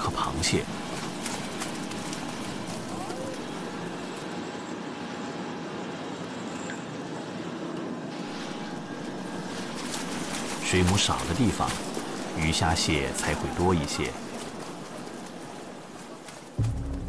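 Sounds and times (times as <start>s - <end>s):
ship engine rumbling hum: 0.0s - 17.0s.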